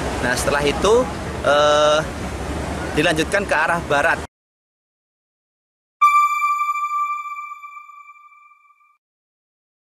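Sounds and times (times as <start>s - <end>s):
electronic chime ringing: 6.0s - 8.9s.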